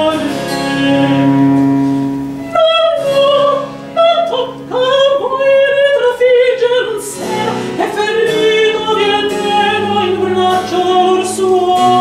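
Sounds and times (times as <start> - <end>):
soprano singing with vibrato: 0.0 - 1.4, 2.4 - 12.0.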